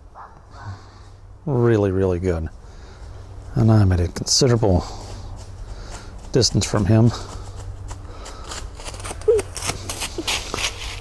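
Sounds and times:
footsteps in dry leaves: 0:02.5 - 0:11.0.

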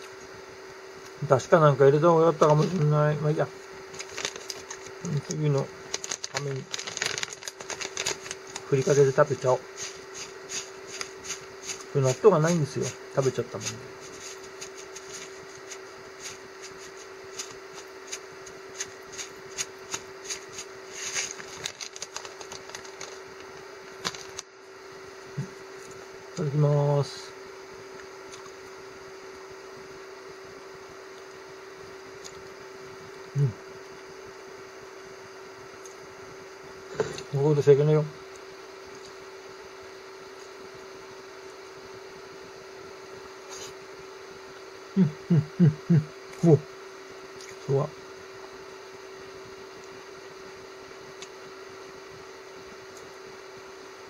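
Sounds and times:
steady low hum: 0:00.0 - 0:54.0
packet crinkling: 0:03.9 - 0:11.9, 0:18.8 - 0:24.5
dry granules rattling in a bag: 0:04.0 - 0:05.3, 0:05.9 - 0:12.9, 0:13.6 - 0:23.3, 0:24.0 - 0:24.4
man chuckling: 0:44.9 - 0:46.1.

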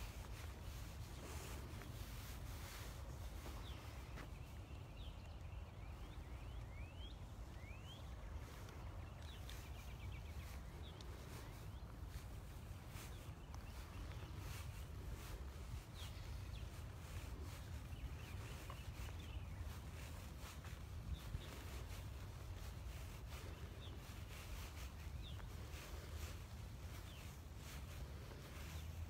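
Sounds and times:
faint bird chirps: 0:00.0 - 0:29.0
wind rumble on microphone: 0:00.0 - 0:29.0.

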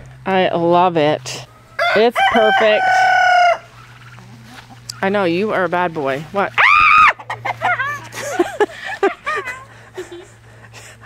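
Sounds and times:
rooster clucking: 0:01.3 - 0:05.5, 0:07.0 - 0:08.4.

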